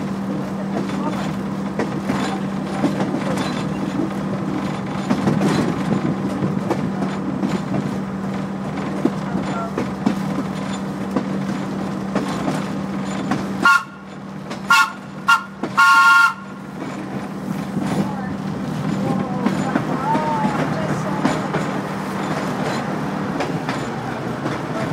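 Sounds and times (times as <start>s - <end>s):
rail vehicle running on track: 0.0s - 24.9s
train horn toots: 13.6s - 16.6s.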